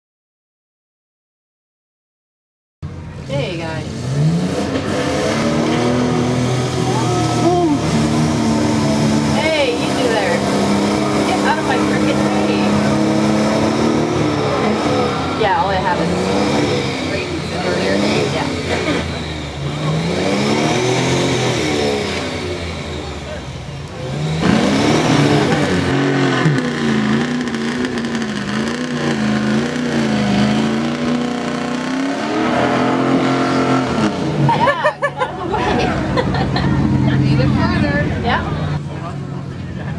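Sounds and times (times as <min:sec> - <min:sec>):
truck engine revving: 0:02.9 - 0:39.9.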